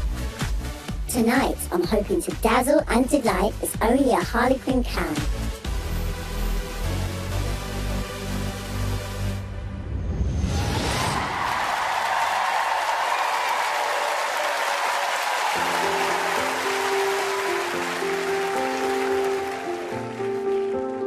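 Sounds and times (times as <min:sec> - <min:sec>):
audience applause: 0:11.0 - 0:21.0
slow grand piano chords: 0:15.6 - 0:21.0.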